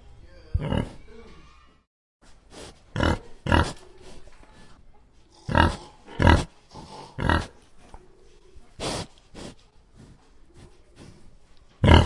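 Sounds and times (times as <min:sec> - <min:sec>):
young pigs grunting: 0:05.3 - 0:07.6, 0:11.8 - 0:12.0.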